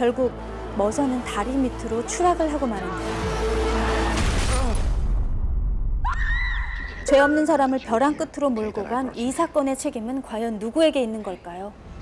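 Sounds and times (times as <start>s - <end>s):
high-pitched scream: 6.0s - 7.1s.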